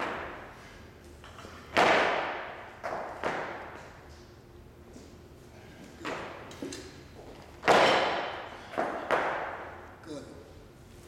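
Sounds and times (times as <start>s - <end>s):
heavy weights thudding with echo: 7.6s - 9.8s.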